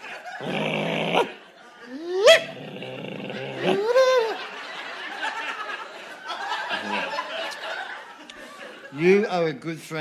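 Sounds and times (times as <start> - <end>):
person yelping like a dog: 1.9 - 4.4.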